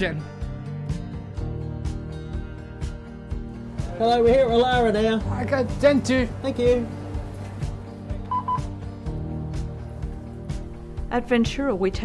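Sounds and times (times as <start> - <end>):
background music: 0.0 - 12.0
card reader beeps: 8.3 - 8.7.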